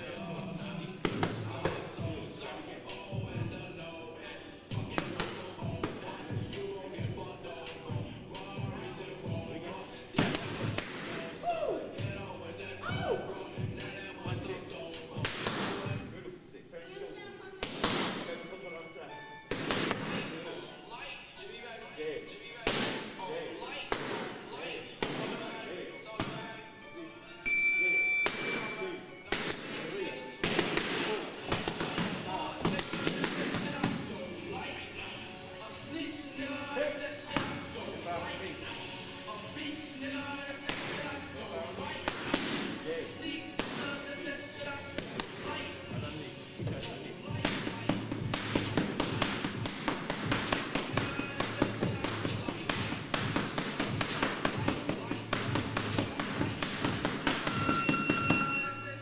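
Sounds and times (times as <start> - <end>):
punches smacking focus mitts: 10.2 - 11.2, 30.4 - 34.0, 46.6 - 58.4
high steady tone: 27.4 - 28.8.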